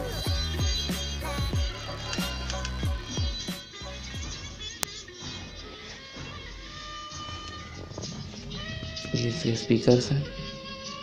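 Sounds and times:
music through car speakers: 0.0s - 9.5s.

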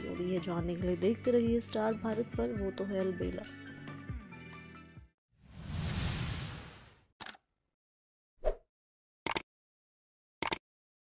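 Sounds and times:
noisy whoosh: 5.4s - 7.1s.

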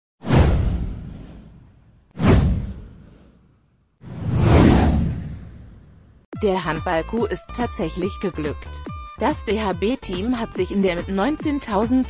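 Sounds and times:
deep boom: 0.2s - 3.1s
whoosh sound effect: 2.2s - 3.4s, 4.0s - 5.8s.

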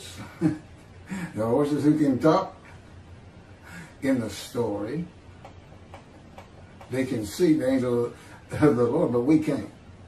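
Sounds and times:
man talking: 1.1s - 2.7s, 3.9s - 5.2s, 6.8s - 9.8s.

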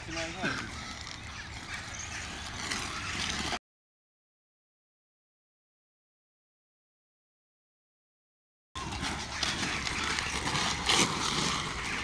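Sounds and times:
skate wheels rolling on asphalt: 0.0s - 3.6s, 8.8s - 12.0s
skates clicking and clacking: 0.0s - 3.6s, 8.8s - 12.0s.

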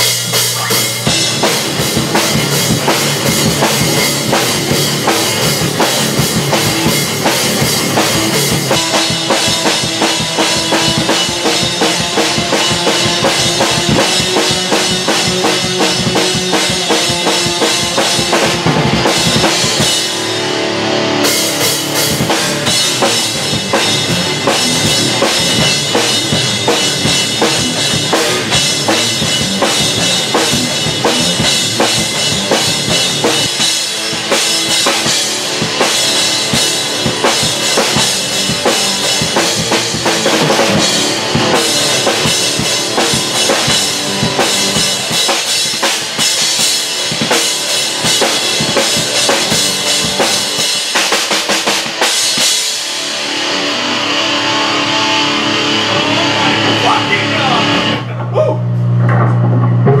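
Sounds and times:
drum kit playing: 0.0s - 60.0s
electric guitars playing: 0.0s - 60.0s
steady low tone: 58.0s - 60.0s.

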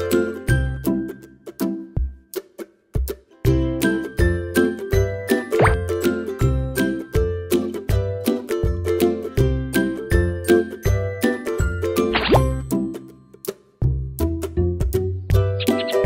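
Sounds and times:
upbeat background music: 0.0s - 16.0s.

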